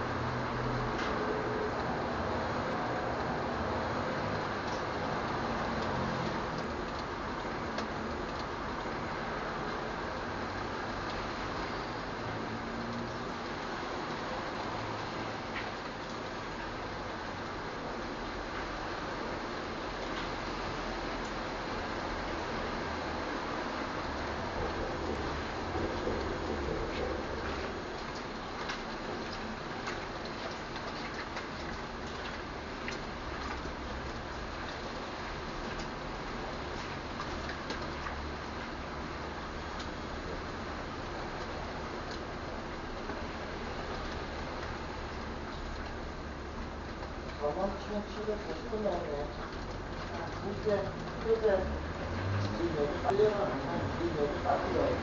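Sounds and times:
steady rain hiss: 0.0s - 55.0s
sharp drip ticks: 4.2s - 18.8s, 21.2s - 21.9s, 24.0s - 55.0s.

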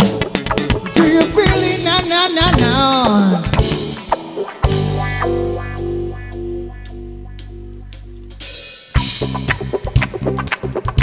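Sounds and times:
live band playing: 0.0s - 11.0s
sustained low chord: 5.0s - 8.6s.

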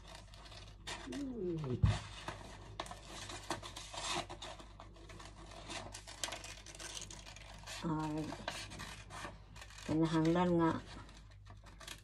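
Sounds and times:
scissors cutting paper: 0.0s - 12.0s.

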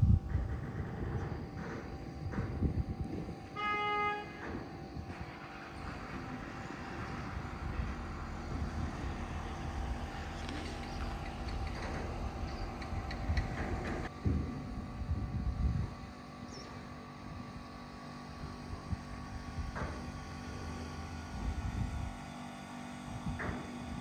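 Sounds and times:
low engine hum: 0.0s - 24.0s
wind buffeting microphone: 0.0s - 24.0s.

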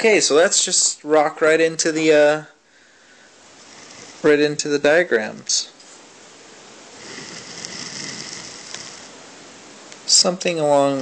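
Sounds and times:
stylus scratching on drawing tablet: 3.6s - 4.5s, 7.0s - 9.2s.

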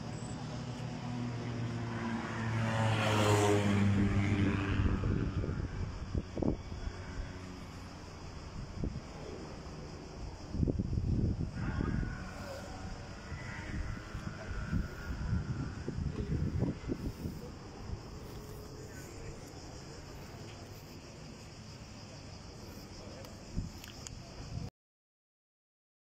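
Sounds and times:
wind buffeting microphone: 3.6s - 20.4s
low outdoor rumble: 3.9s - 23.7s.

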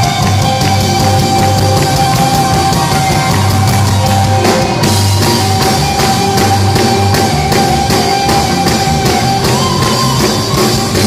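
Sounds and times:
drum kit beat: 0.0s - 11.0s
electric guitars: 0.0s - 11.0s
keyboards: 0.0s - 11.0s.

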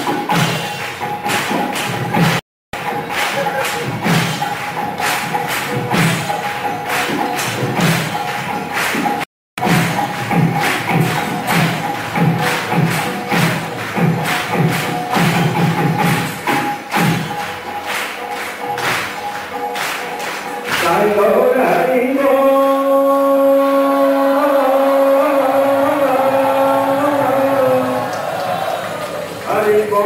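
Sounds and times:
drum beat: 0.0s - 21.8s
hand cymbals clashing: 2.8s - 21.1s.

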